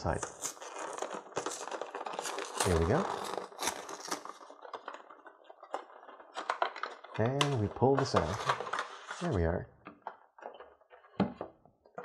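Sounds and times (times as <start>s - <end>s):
plastic tray crackling: 0.0s - 11.3s.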